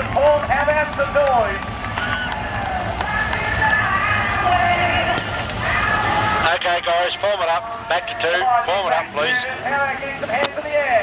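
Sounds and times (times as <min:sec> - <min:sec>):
race car engines rumbling: 0:00.0 - 0:11.0.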